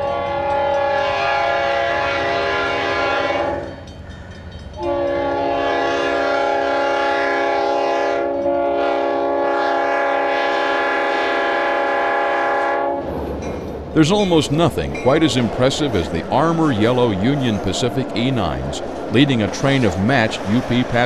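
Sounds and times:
locomotive air horn blasts: 0.0 - 3.8, 4.8 - 13.1
locomotive engine rumble: 12.8 - 21.0.

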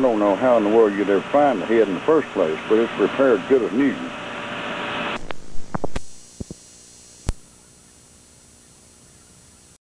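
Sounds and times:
low electrical hum: 0.0 - 9.8.

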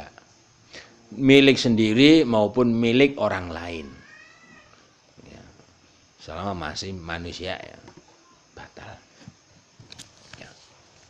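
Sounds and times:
high-pitched animal cry: 3.6 - 4.9.

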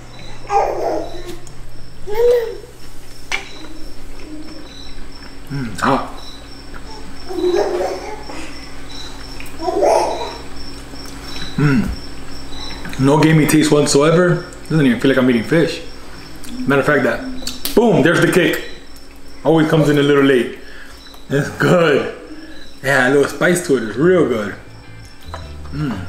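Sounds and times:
faint high chirping: 0.0 - 26.0
toddler babbling: 0.4 - 2.8, 3.4 - 4.8, 6.8 - 8.4, 9.6 - 10.5
man humming while chewing: 5.3 - 6.0, 11.6 - 12.0, 25.5 - 26.0.

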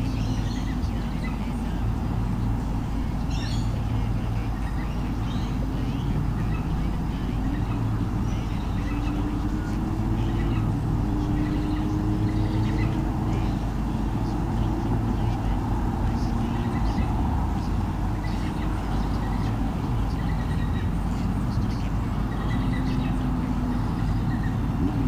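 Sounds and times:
low mechanical drone: 0.0 - 25.0.

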